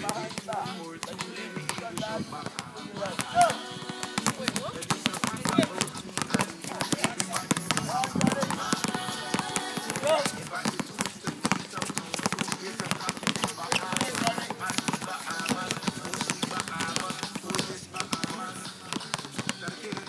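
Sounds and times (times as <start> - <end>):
basketballs bouncing on hard court: 0.0 - 20.0
voices calling: 0.0 - 20.0.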